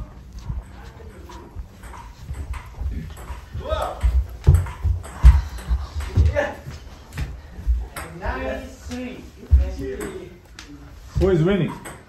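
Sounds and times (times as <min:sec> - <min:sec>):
footsteps thudding: 0:00.0 - 0:10.4.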